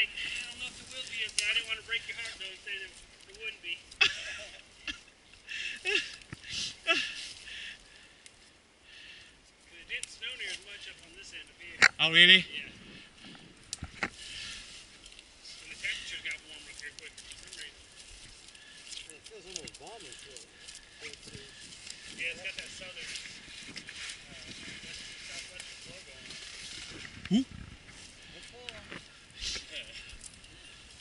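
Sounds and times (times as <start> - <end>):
rustling on dry leaves: 0.0 - 8.6, 9.4 - 31.0.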